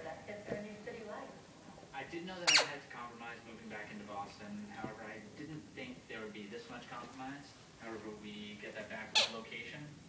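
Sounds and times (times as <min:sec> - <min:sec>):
faint television talk: 0:00.0 - 0:10.0
puppy squeak: 0:02.5 - 0:02.8, 0:09.2 - 0:09.4.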